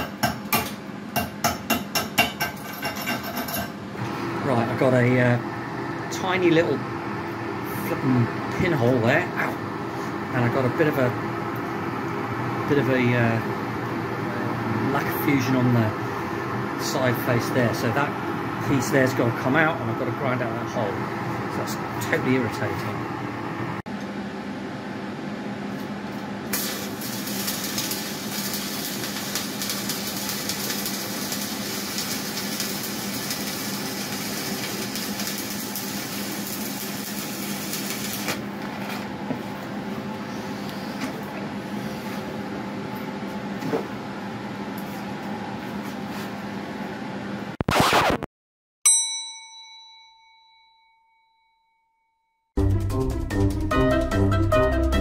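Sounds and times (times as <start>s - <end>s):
welding arc crackling: 26.5s - 38.4s
loud burst: 47.6s - 48.3s
bell-like ding: 48.9s - 52.4s.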